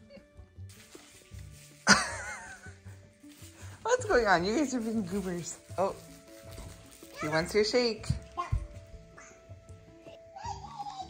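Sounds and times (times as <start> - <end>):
background music with low beat: 0.0 - 11.0.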